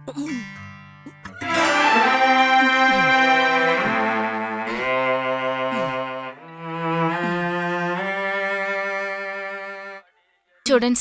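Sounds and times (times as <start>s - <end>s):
bowed strings sustained note: 1.3s - 10.0s.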